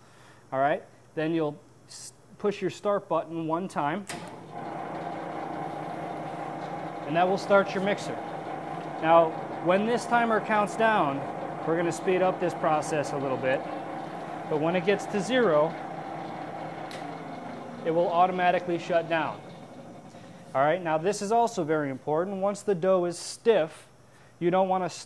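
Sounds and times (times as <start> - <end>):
mixer motor humming: 4.2 - 21.6.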